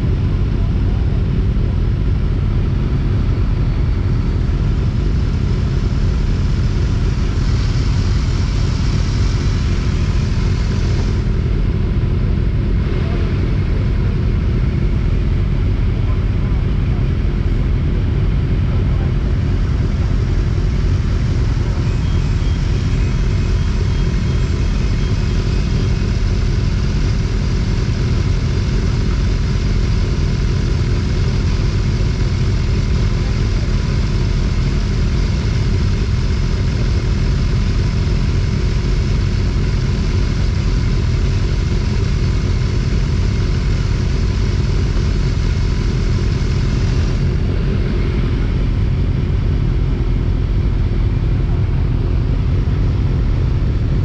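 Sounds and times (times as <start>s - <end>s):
motorcycles idling: 0.3s - 54.0s.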